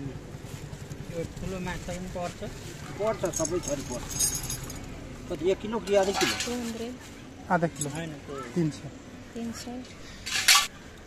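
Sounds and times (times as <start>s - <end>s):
people talking: 1.1s - 4.3s
steel scale pans clinking: 10.2s - 10.7s.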